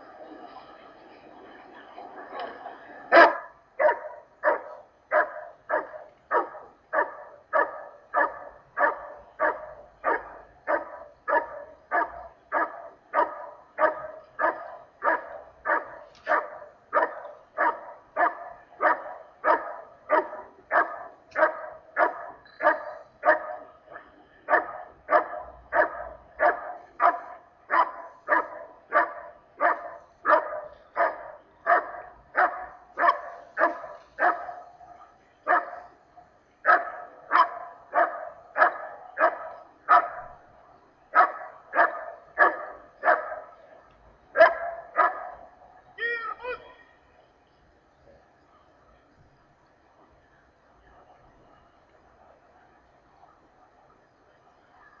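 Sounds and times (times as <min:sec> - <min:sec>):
dog barking: 0:03.1 - 0:35.9, 0:36.6 - 0:40.4, 0:41.1 - 0:43.6, 0:44.3 - 0:45.5.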